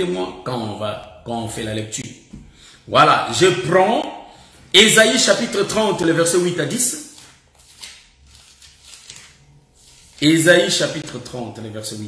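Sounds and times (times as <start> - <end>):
pages being turned: 7.0 - 10.8.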